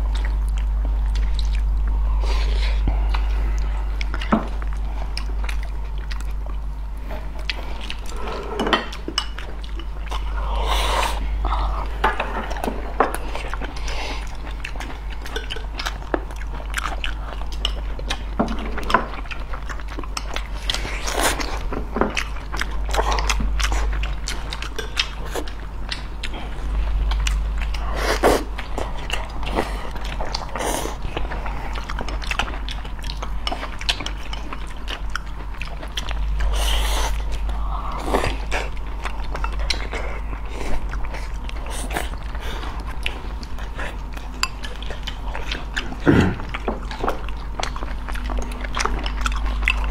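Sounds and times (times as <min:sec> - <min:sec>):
chewing and biting: 0:00.0 - 0:49.9
steady low hum: 0:00.0 - 0:49.9.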